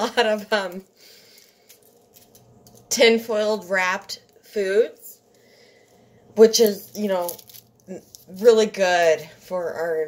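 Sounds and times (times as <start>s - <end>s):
aluminium foil crinkling: 0.1s - 3.0s, 5.8s - 9.3s.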